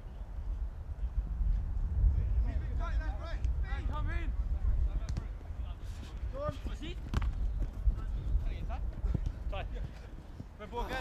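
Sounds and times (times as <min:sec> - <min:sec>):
wind rumble on microphone: 0:00.0 - 0:11.0
ball being kicked: 0:07.0 - 0:07.4.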